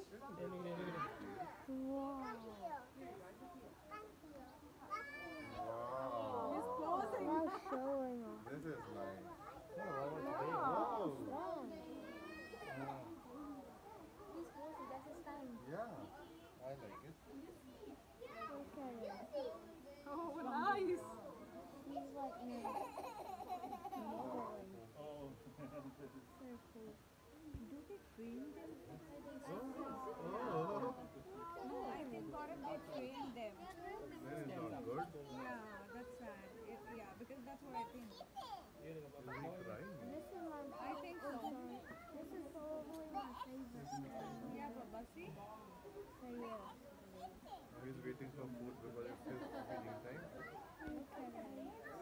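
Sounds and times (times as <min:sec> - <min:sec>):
people chattering: 0:00.0 - 0:52.0
children's voices babbling: 0:04.8 - 0:08.0, 0:22.0 - 0:24.4
people talking: 0:49.2 - 0:52.0.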